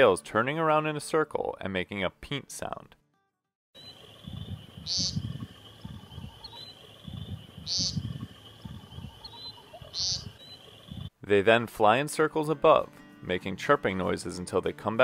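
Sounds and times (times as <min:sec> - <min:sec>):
woodcock peent calls: 0:03.8 - 0:11.1
low rumbling: 0:04.2 - 0:11.1.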